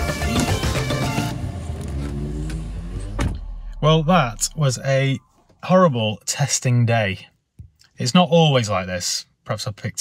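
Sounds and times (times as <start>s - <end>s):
background music: 0.0s - 2.3s
car engine running: 0.0s - 5.5s.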